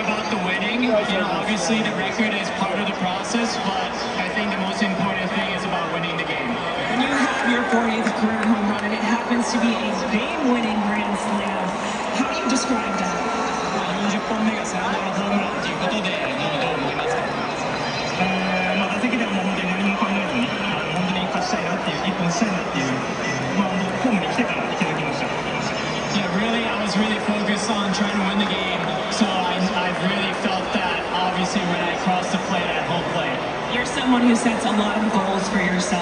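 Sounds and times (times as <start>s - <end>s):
crowd murmur: 0.0s - 36.0s
man speaking over public address: 0.0s - 36.0s
music: 10.7s - 30.6s.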